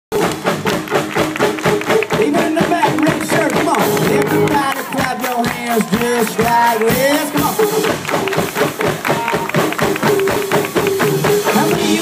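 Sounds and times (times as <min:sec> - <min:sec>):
live rock-country band playing: 0:00.1 - 0:12.0.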